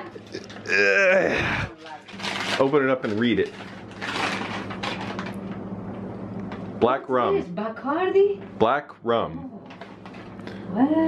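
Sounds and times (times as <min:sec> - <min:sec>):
steady low hum: 0:00.0 - 0:11.0
paper bag rustling: 0:01.7 - 0:05.6.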